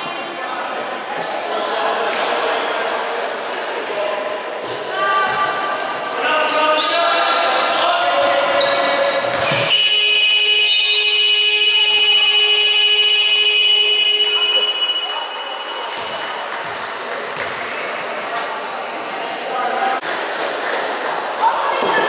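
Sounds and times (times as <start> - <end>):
voices: 0.0 - 22.0
shoes squeaking on court: 6.8 - 9.8, 14.6 - 19.8
arena buzzer: 9.6 - 16.3.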